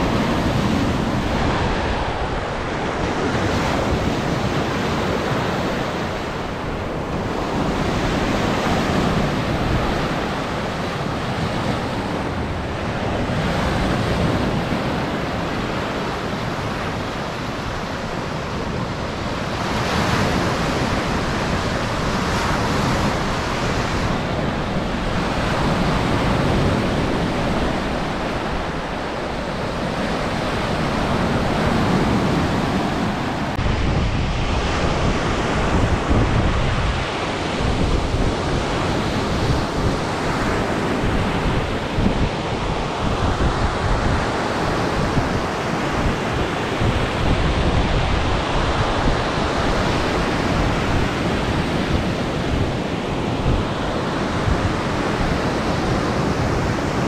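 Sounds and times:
waves washing on a sandy beach: 0:00.0 - 0:57.0
wind gusting on microphone: 0:00.0 - 0:57.0.

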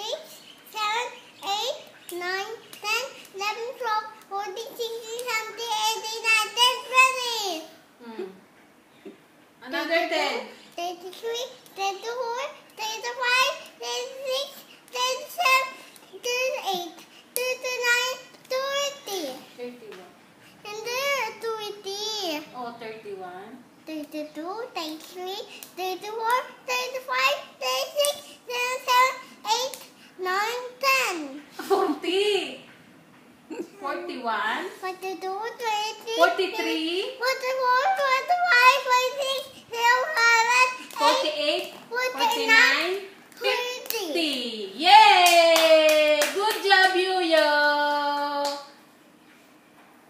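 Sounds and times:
sharp hand claps: 0:40.2 - 0:44.4, 0:45.2 - 0:47.5, 0:48.2 - 0:48.7.

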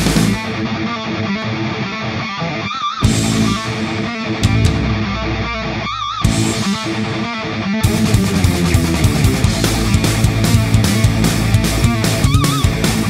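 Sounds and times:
drums hitting: 0:00.0 - 0:00.4, 0:03.0 - 0:07.2, 0:07.8 - 0:13.0
bass guitar: 0:00.0 - 0:13.0
electric guitar riff: 0:00.0 - 0:13.0.

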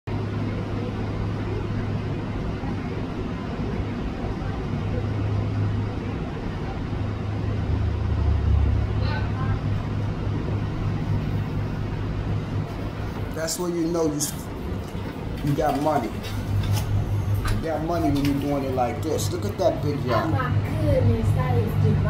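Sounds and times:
boat engine rumble: 0:00.1 - 0:22.0.

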